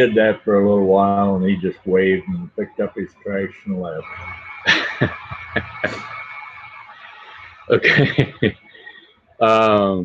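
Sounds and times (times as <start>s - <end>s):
man laughing: 0.0s - 6.1s, 7.0s - 10.0s.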